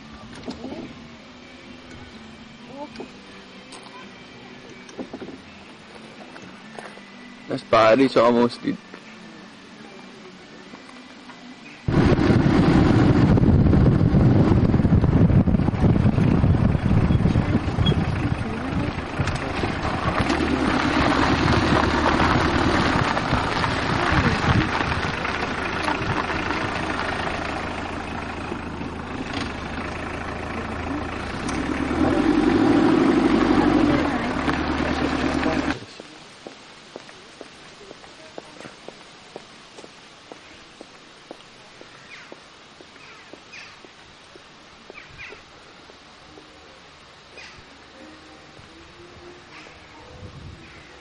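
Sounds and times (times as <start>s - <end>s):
car road and engine noise: 0.0s - 51.0s
wind buffeting: 11.9s - 35.7s.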